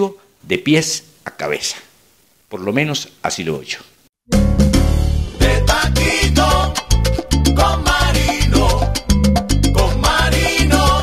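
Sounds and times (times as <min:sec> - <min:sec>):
salsa music: 0:04.3 - 0:11.0.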